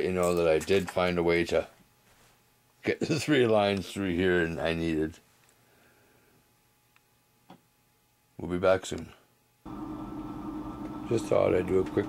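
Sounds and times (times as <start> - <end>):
low background hum: 0.0 - 12.0
man speaking: 2.8 - 5.2, 11.1 - 12.0.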